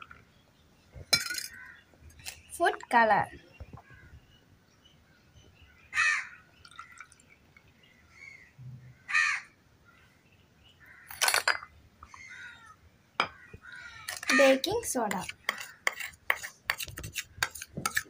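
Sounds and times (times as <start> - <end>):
crow cawing: 5.9 - 6.4, 9.0 - 9.5, 12.1 - 14.5.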